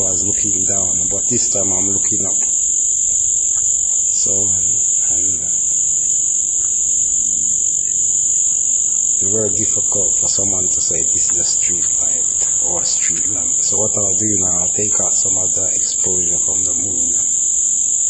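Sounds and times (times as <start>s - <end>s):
low murmured speech: 0.0s - 2.5s, 4.1s - 5.7s, 9.2s - 17.5s
high-pitched buzz: 0.0s - 7.9s, 9.1s - 18.0s.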